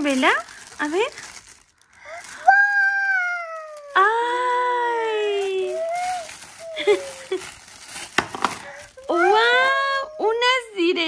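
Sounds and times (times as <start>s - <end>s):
child squealing: 2.2s - 4.4s, 5.6s - 7.4s, 9.0s - 10.3s.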